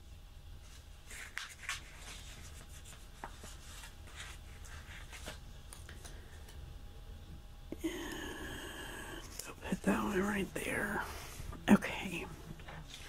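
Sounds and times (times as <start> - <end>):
paper rustling and rubbing: 0.6 - 6.1.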